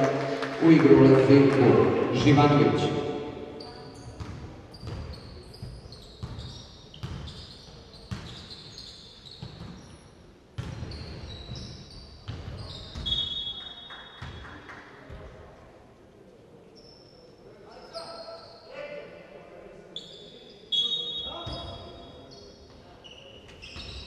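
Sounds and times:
basketball bouncing on court: 0:03.6 - 0:08.5, 0:09.4 - 0:09.9, 0:10.6 - 0:13.3, 0:14.2 - 0:14.5.

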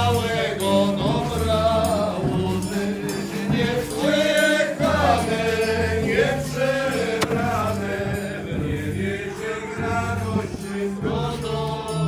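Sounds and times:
folk band dance tune: 0:02.2 - 0:11.5
sharp click: 0:07.2 - 0:07.6.

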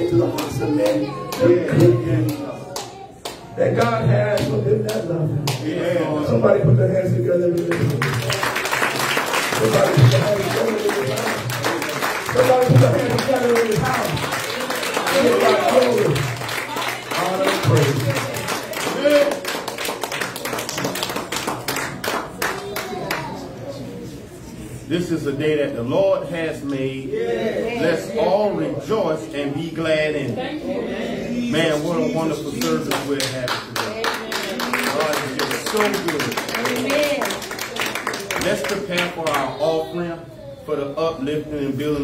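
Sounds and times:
people clapping: 0:00.0 - 0:05.8, 0:07.4 - 0:23.5, 0:32.4 - 0:39.7.

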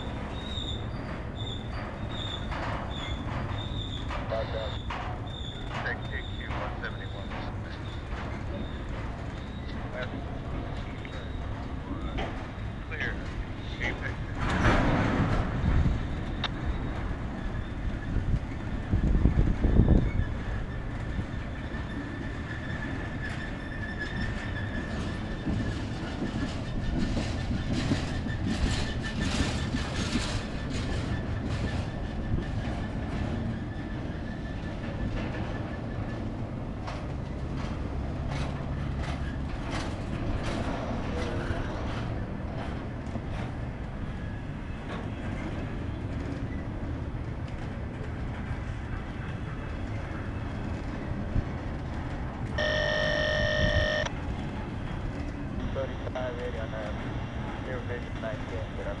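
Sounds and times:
wheels clicking over rail joints: 0:00.0 - 0:13.6, 0:14.2 - 0:53.6
train wheels rumbling on rails: 0:00.0 - 0:59.0
high-pitched squeal: 0:52.6 - 0:54.1
loud high-pitched tone: 0:52.6 - 0:54.1, 0:55.6 - 0:56.8.

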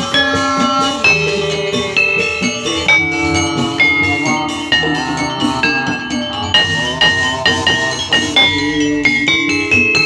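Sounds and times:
gamelan metallophones ringing: 0:00.0 - 0:10.0
low sustained gamelan notes: 0:00.0 - 0:10.0.

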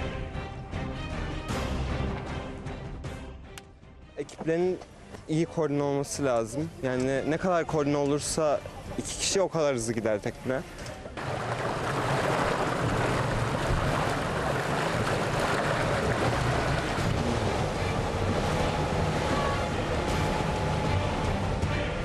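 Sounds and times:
faint music: 0:03.4 - 0:12.0, 0:12.8 - 0:22.0
wind: 0:03.5 - 0:22.0
waves washing: 0:11.2 - 0:22.0.

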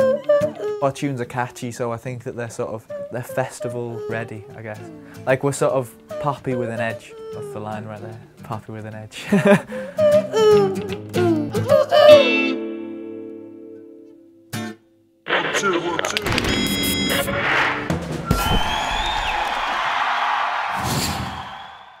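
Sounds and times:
person singing: 0:02.9 - 0:05.1, 0:06.1 - 0:08.2, 0:09.8 - 0:12.6.

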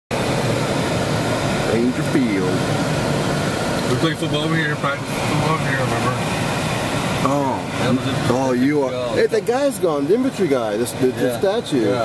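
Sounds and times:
wind and road noise in car: 0:00.1 - 0:12.0.

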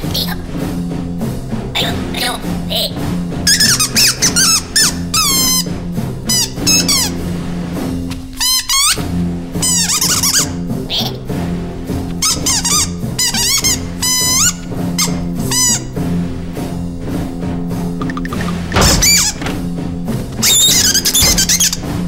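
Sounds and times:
background music: 0:00.0 - 0:22.0
high squeaks bending in pitch: 0:18.0 - 0:19.4, 0:20.4 - 0:21.8.

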